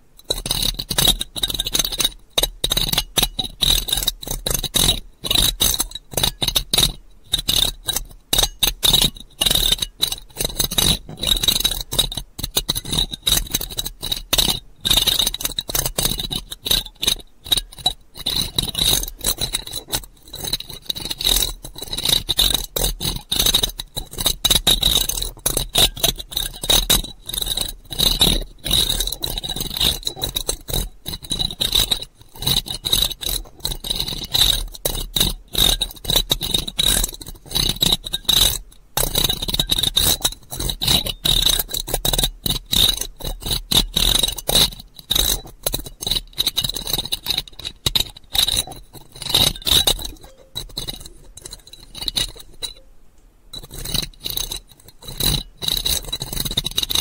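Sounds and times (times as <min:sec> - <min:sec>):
close scratching strokes: 0:17.5 - 0:52.9, 0:53.6 - 0:57.0.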